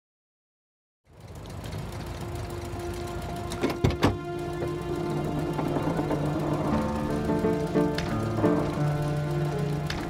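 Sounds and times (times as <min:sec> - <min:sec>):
car engine idling: 0:01.1 - 0:10.0.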